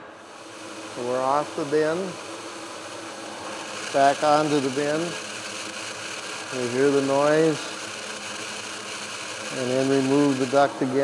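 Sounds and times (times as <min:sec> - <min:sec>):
blower fan rush of air: 0:00.0 - 0:11.0.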